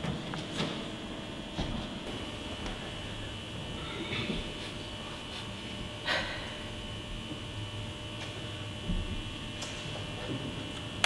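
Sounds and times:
electrical mains hum: 0:00.0 - 0:11.0
thin high whine: 0:00.4 - 0:11.0.

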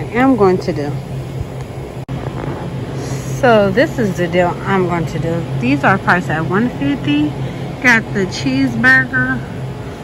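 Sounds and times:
low mechanical hum: 0:00.0 - 0:10.0
soft noise bed: 0:00.0 - 0:10.0.

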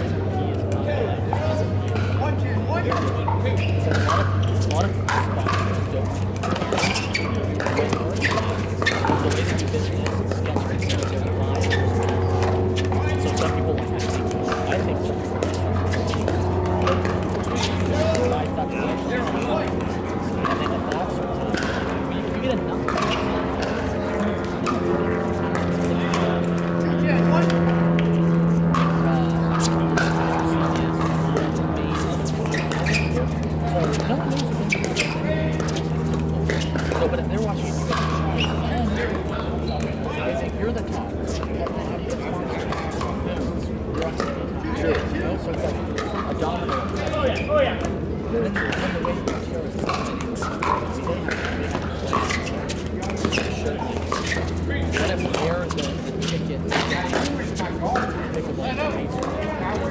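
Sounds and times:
low mechanical hum: 0:00.0 - 0:59.9.

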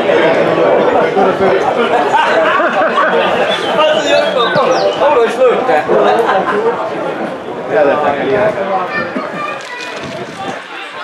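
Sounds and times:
murmur of small crowd: 0:00.0 - 0:11.0
voices calling out and talking: 0:00.0 - 0:11.0.

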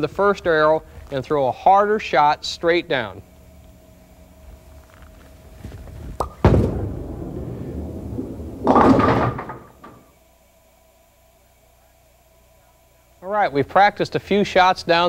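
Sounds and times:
bowling ball rolling on wooden lane: 0:05.8 - 0:10.0
bowling pins clattering: 0:06.1 - 0:10.0.

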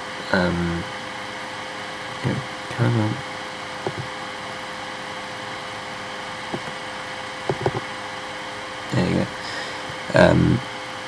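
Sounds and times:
computer hum: 0:02.0 - 0:10.5
mouse clicks: 0:03.8 - 0:04.1, 0:06.6 - 0:06.8, 0:07.5 - 0:07.8.

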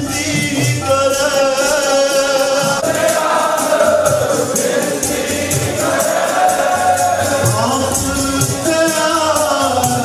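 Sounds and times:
quick percussion beat: 0:00.0 - 0:10.0
voices singing a hymn: 0:00.1 - 0:10.0.

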